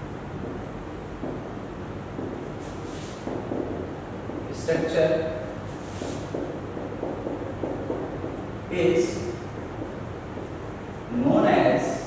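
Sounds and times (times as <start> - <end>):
low room hum: 0.0 - 12.0
marker writing on whiteboard: 0.4 - 12.0.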